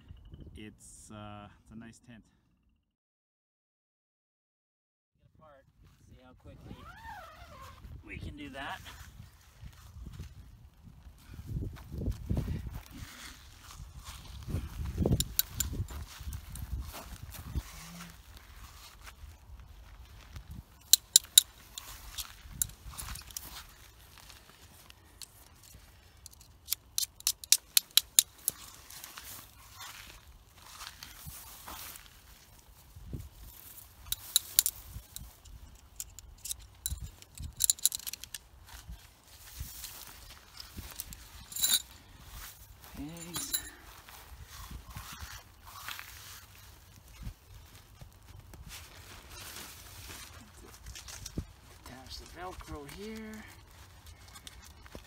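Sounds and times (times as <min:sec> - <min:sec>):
tent fabric rustling: 0:06.6 - 0:26.6, 0:27.8 - 0:55.0
tent stakes clicking: 0:11.7 - 0:55.0.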